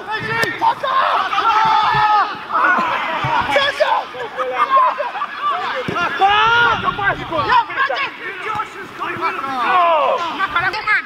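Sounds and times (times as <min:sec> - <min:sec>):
men shouting: 0:00.0 - 0:10.4.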